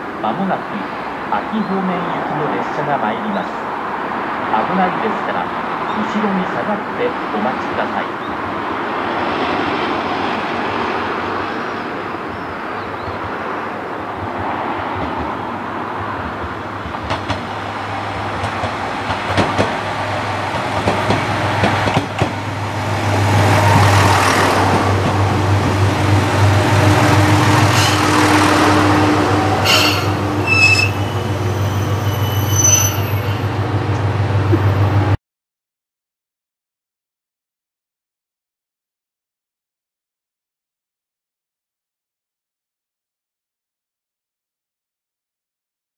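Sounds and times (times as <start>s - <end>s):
diesel railcar engine hum: 6.8s - 35.2s
brake squeals: 29.6s - 33.6s.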